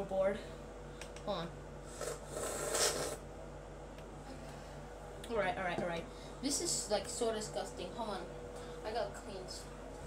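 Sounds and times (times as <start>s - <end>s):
hissy slurp: 2.0s - 3.2s.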